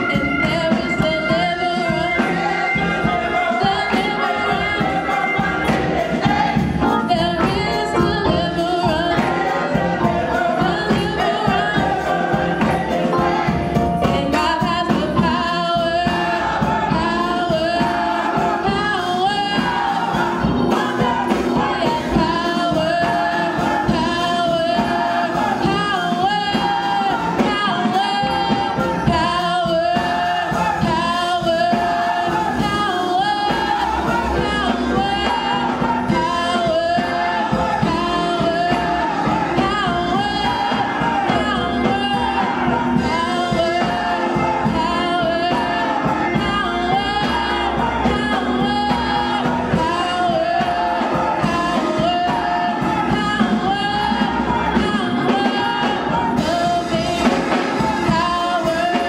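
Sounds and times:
woman singing gospel song: 0.0s - 59.0s.

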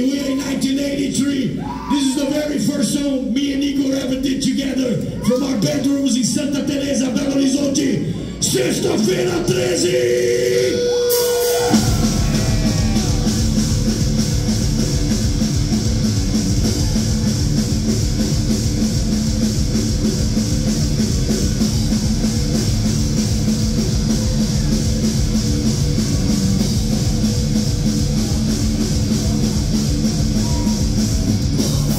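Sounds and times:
distorted electric guitars: 9.6s - 31.9s
drum kit: 10.6s - 31.9s.

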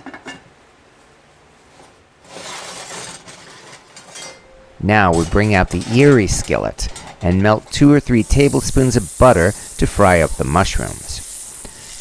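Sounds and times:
heavy pot scraping on burner: 2.2s - 4.4s.

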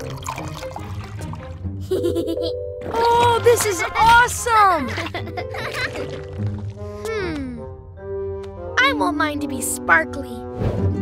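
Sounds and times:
cartoon slime pouring: 0.0s - 1.6s, 2.8s - 7.2s
background music: 0.0s - 11.0s.

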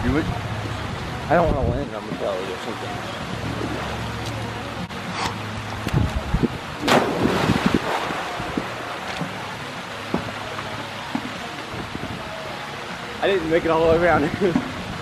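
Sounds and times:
water churning: 0.3s - 15.0s
spray fountain rushing: 1.9s - 15.0s
loud splash into water: 6.8s - 9.4s.

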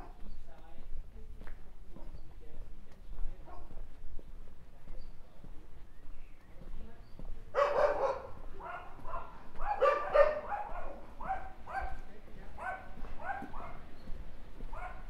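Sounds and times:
dog barking: 3.4s - 3.8s, 7.5s - 13.9s, 14.7s - 15.0s.

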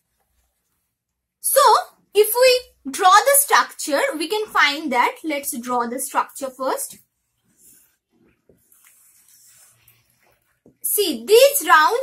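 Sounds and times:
marker scratching on whiteboard: 3.9s - 12.0s.

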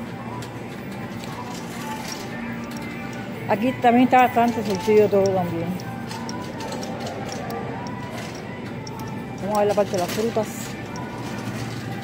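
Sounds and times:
faint background music: 0.0s - 12.0s
store ambience: 0.0s - 12.0s
shopping cart rolling on tiles: 0.1s - 12.0s.

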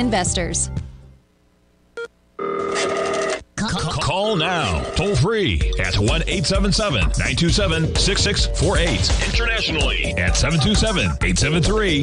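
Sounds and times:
electronic telephone ring: 2.4s - 3.4s.

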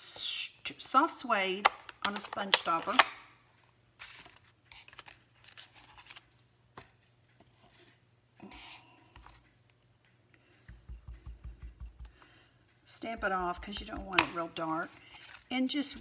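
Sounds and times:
paper rustling and sliding: 4.0s - 6.3s
sponge dabbing on ink pad: 10.7s - 12.2s, 13.0s - 14.4s.

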